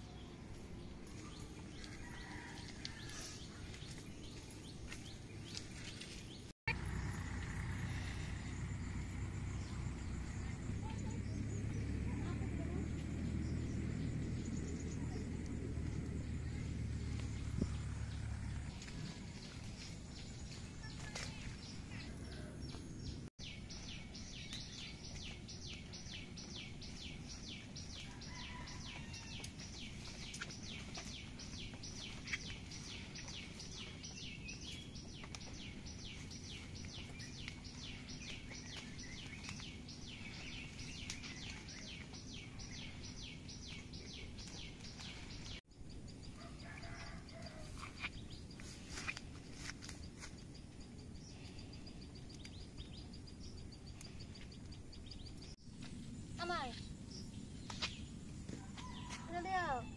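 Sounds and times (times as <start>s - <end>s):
low steady rumble: 0.0s - 46.6s.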